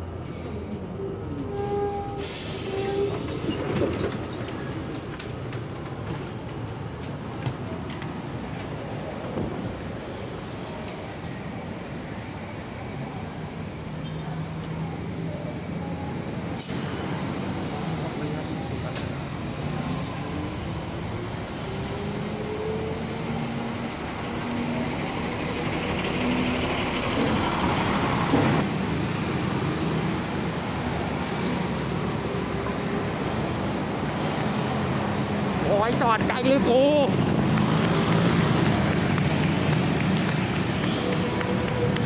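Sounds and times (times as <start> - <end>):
bus diesel engine running: 2.2 - 35.8.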